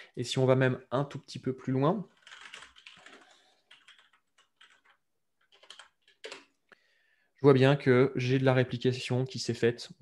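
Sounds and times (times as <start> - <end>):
computer keyboard typing: 2.1 - 6.5.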